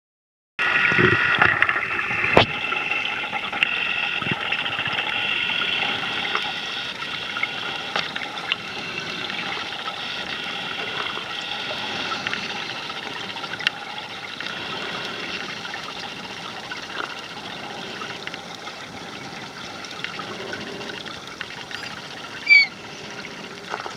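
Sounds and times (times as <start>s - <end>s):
underwater water hiss: 2.2s - 13.4s, 14.3s - 16.4s.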